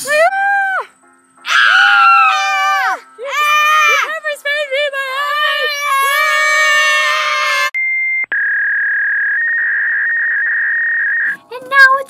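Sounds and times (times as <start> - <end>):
girl screaming: 1.5 - 4.1, 5.3 - 7.8.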